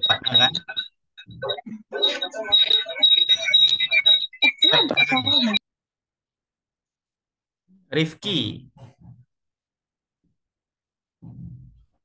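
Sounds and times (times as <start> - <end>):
high-pitched electronic tone: 0.0 - 5.6
indistinct voices over a video call: 0.0 - 5.7.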